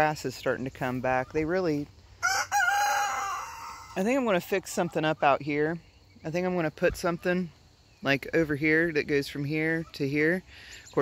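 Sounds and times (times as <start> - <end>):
rooster crowing: 2.2 - 4.0.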